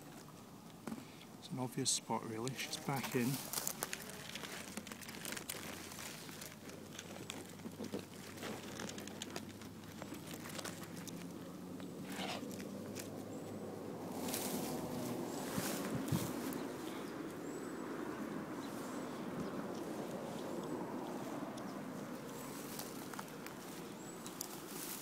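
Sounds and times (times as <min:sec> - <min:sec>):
dry grass crackling and rustling: 0:01.7 - 0:25.0.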